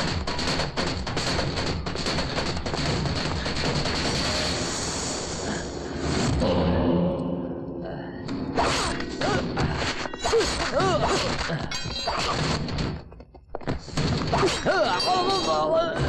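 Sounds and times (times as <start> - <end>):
film score: 0.0 - 16.0.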